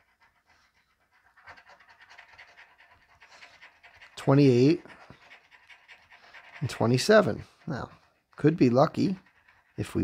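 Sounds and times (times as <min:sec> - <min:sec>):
coin scratching lottery ticket: 0:01.5 - 0:10.0.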